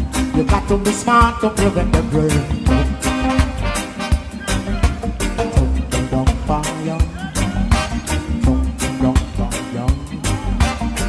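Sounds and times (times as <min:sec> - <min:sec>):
drums striking steady beat: 0:00.0 - 0:11.0
heavy bass: 0:00.0 - 0:11.0
sustained keyboard or horn tones: 0:02.2 - 0:09.9.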